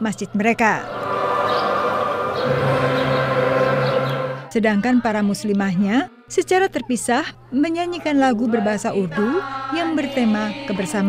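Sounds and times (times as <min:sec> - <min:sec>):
group of people singing: 0:00.8 - 0:04.6, 0:08.5 - 0:11.0.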